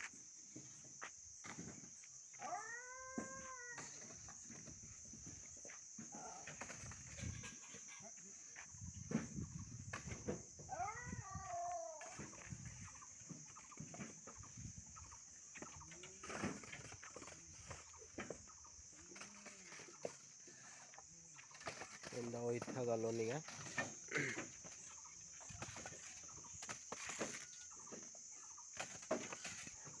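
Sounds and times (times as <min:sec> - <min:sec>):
farm animal call: 0:02.3 - 0:04.7, 0:06.0 - 0:08.7, 0:10.6 - 0:22.2.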